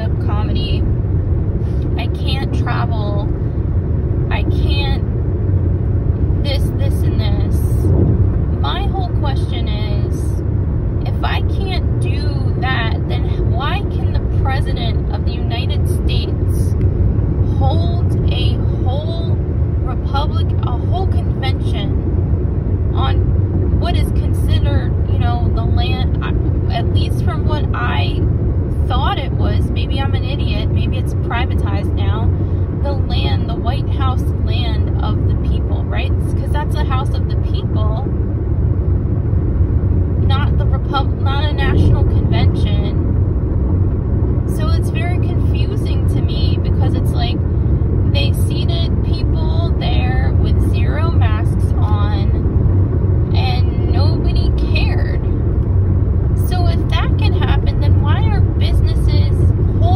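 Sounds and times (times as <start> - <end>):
car road and engine noise: 0.0 - 59.9
person talking: 23.0 - 23.2, 28.8 - 38.1, 40.2 - 43.0, 53.4 - 55.2, 56.4 - 59.9.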